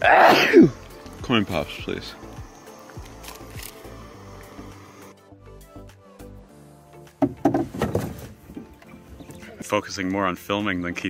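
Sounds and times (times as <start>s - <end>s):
knocks on metal canoe hull: 7.2s - 8.3s.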